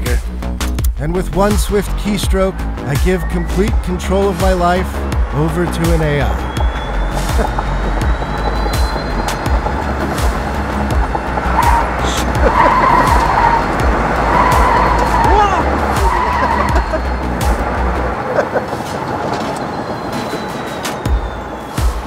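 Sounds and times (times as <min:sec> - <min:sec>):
low road and wind rumble: 0:00.0 - 0:22.0
tyres squealing: 0:01.4 - 0:22.0.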